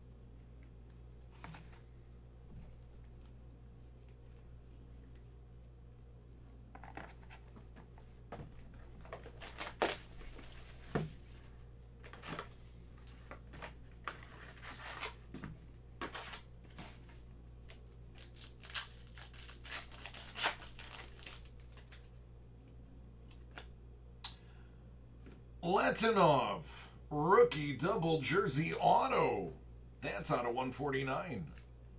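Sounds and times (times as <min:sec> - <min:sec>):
foil wrappers tearing and crinkling: 0:09.0 - 0:10.9, 0:17.7 - 0:22.0.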